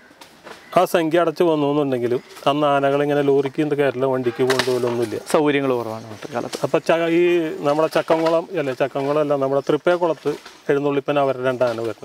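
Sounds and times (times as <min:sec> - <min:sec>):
man talking: 0:00.7 - 0:12.0.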